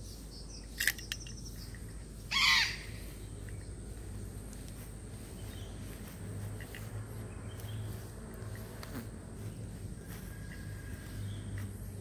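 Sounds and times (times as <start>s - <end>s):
low outdoor background: 0.0s - 12.0s
parrot squawk: 2.3s - 3.0s.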